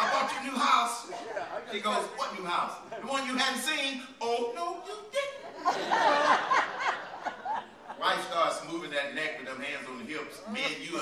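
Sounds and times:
people laughing: 0.0 - 3.4, 5.2 - 8.6, 10.4 - 11.0
man speaking: 0.0 - 5.7, 8.0 - 11.0.

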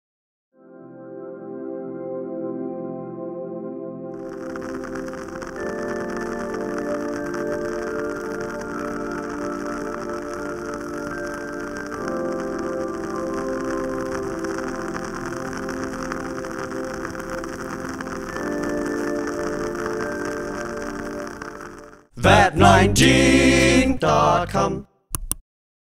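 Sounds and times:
soft ambient music: 0.6 - 22.1
candle wick crackling: 4.2 - 23.8.

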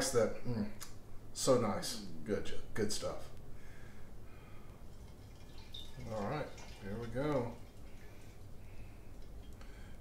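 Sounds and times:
liquid trickling and dripping: 4.7 - 10.0.

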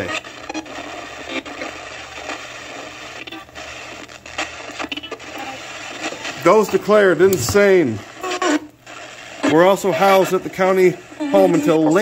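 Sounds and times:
radio static: 0.0 - 12.0.

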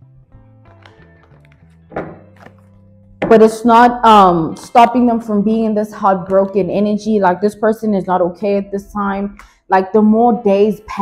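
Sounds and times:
quiet music with held notes: 0.0 - 3.4
thunk: 1.9 - 2.2.

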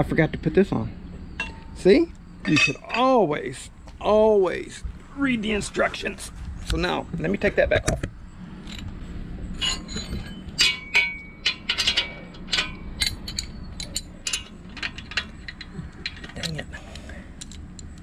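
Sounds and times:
metal bolts clinking and rattling: 1.4 - 3.2, 8.6 - 18.0.

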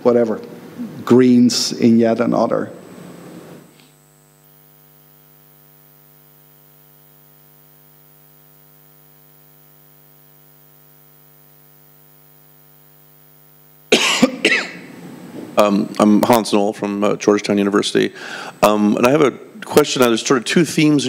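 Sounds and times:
electrical hum: 0.0 - 21.0
loud cough into microphone: 13.9 - 14.9.

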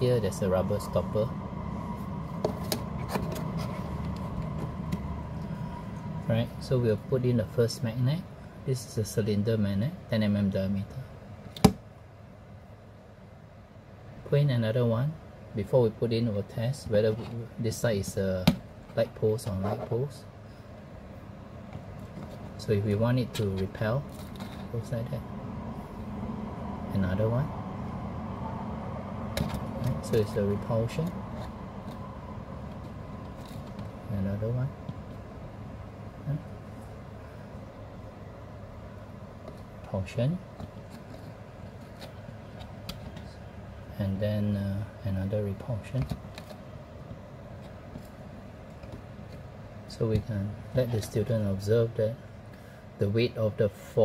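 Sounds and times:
low background hum: 0.0 - 54.0.

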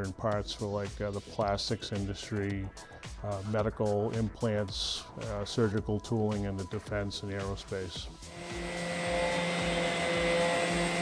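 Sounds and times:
electric sander whirring: 8.2 - 11.0.

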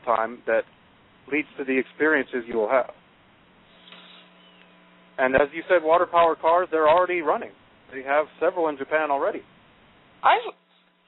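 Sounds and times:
faint steady hum on radio line: 0.0 - 11.0.

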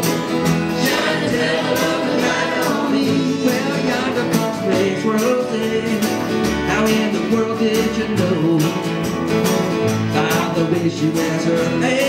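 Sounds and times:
live band playing country-folk: 0.0 - 12.0.

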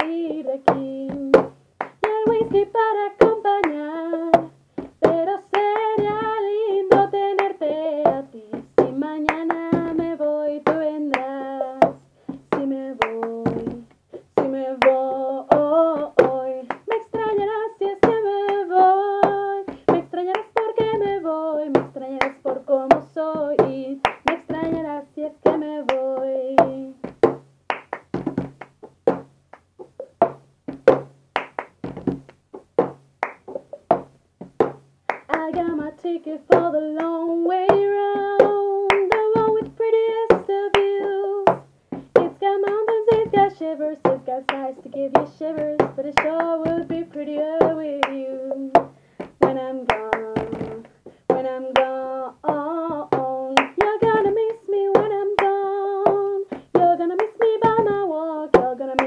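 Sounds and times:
woman singing: 0.0 - 27.1, 35.1 - 59.0
hands clapping: 0.0 - 59.0.

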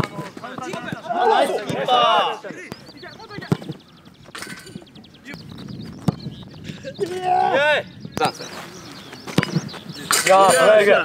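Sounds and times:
soccer ball kicked: 0.0 - 1.9, 2.6 - 3.8, 5.4 - 6.5, 9.3 - 9.7.

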